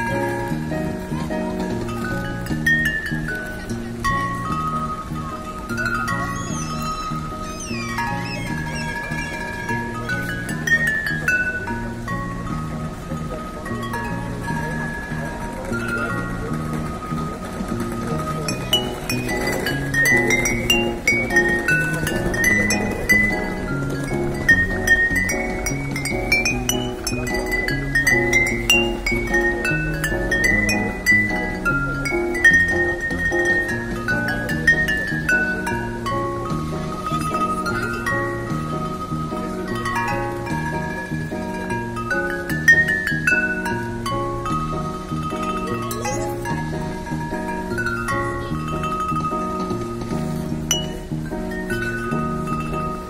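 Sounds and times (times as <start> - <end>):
bottle piano melody: 0.0 - 53.0.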